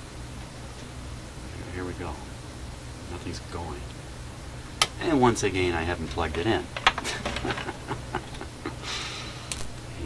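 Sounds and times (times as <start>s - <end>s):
faint low hum: 0.0s - 10.0s
man chuckling quietly: 7.0s - 9.4s.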